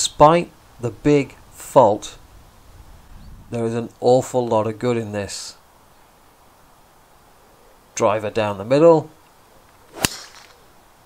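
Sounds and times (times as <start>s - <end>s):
club swish: 9.9s - 10.6s
golf club striking ball: 9.9s - 10.6s.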